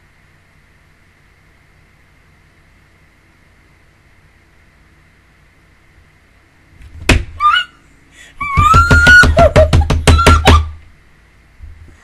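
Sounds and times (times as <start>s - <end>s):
hands pounding thumps: 6.9s - 7.4s, 8.4s - 10.8s
woman squealing: 7.4s - 10.8s.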